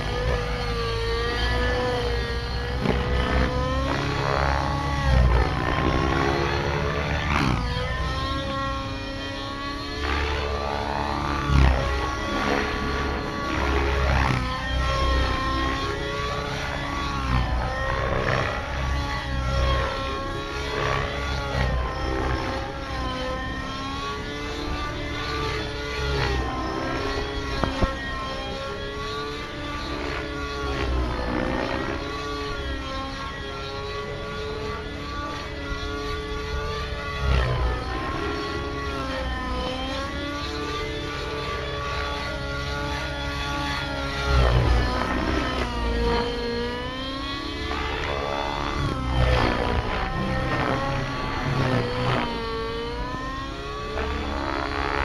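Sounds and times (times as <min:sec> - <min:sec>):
model helicopter engine and rotor whine: 0:00.0 - 0:55.0.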